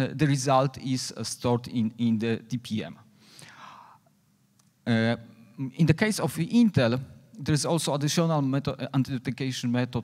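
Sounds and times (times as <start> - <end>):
man breathing in: 3.2 - 4.1.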